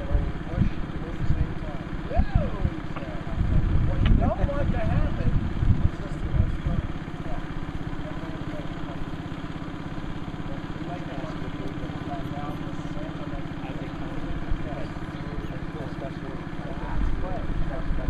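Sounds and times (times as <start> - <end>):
engine idling: 0.0 - 18.0
people talking in background: 0.0 - 18.0.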